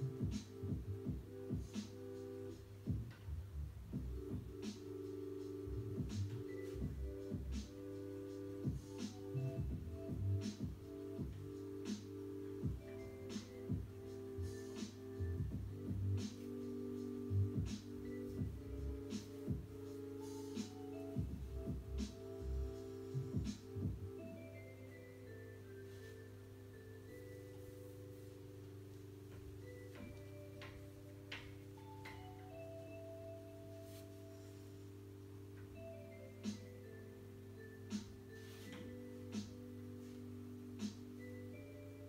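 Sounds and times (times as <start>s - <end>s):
calm electronic music: 0.0s - 42.0s.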